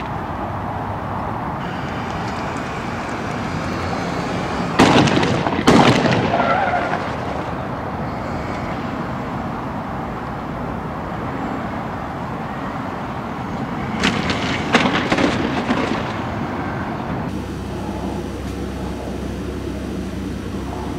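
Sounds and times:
vehicle engine rumbling: 0.0 - 20.9
loud bangs: 1.6 - 7.7, 13.8 - 17.4.

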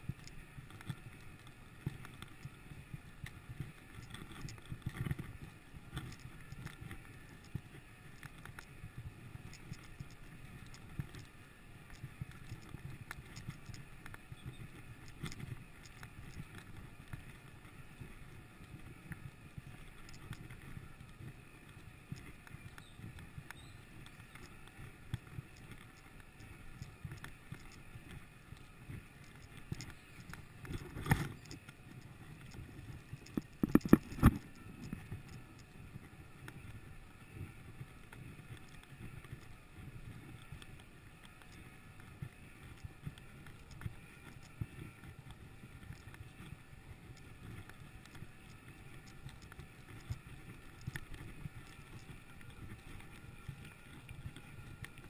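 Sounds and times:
bike tyres on dirt trail: 0.0 - 55.0.

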